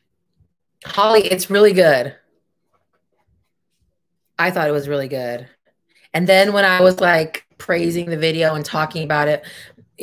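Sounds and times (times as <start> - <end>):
woman speaking: 0.8 - 2.3, 4.4 - 10.0.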